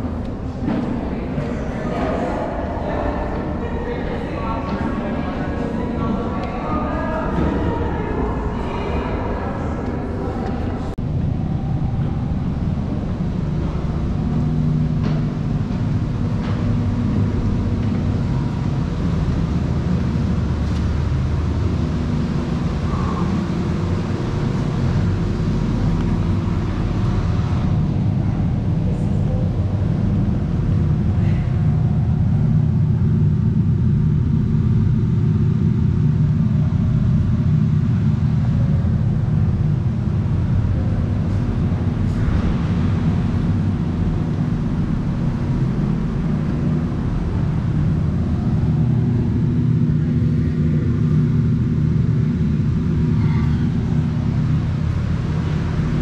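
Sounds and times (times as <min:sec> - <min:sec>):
ventilation fans droning: 0:00.0 - 0:56.0.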